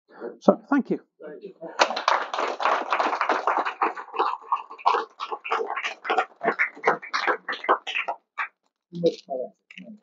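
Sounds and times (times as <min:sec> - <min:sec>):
audience applauding: 0:01.8 - 0:08.5.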